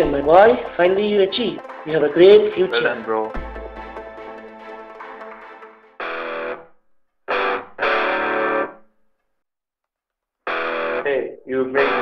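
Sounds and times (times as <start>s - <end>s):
distorted electric guitar chords: 0.0s - 6.7s, 7.3s - 8.8s, 10.5s - 11.1s, 11.8s - 12.0s.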